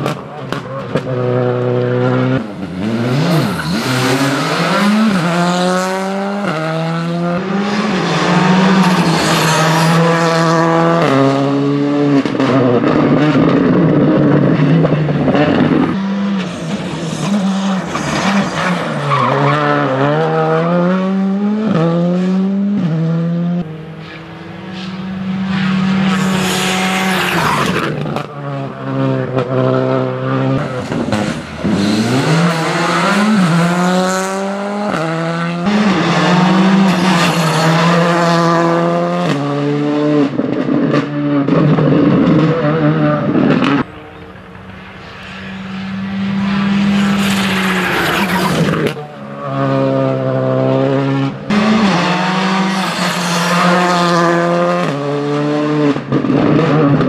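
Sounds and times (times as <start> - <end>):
rally car engine revving hard: 0.0 - 43.9, 45.2 - 57.0.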